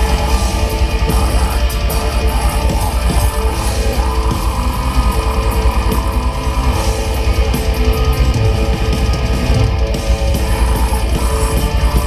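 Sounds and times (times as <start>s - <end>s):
electric guitars: 0.0s - 12.0s
live metal band playing: 0.0s - 12.0s
rapid bass drum: 0.0s - 12.0s.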